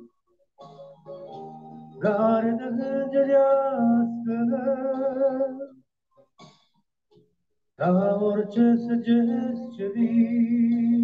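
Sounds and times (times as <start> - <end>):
man singing into a microphone: 2.0 - 5.8, 7.8 - 11.0.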